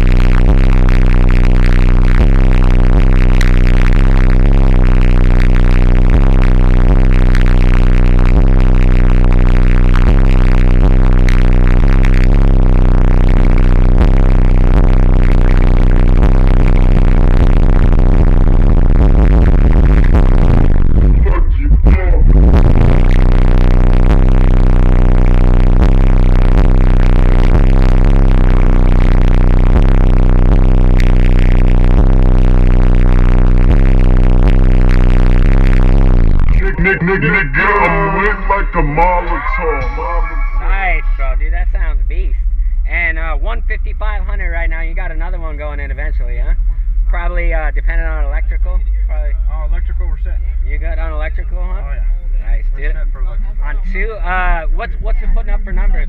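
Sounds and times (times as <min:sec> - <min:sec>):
bass-heavy electronic music: 0:00.0 - 0:56.0.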